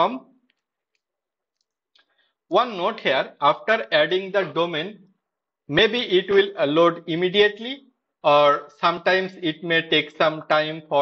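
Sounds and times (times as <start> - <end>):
man's voice: 2.5 - 5.0, 5.7 - 11.0.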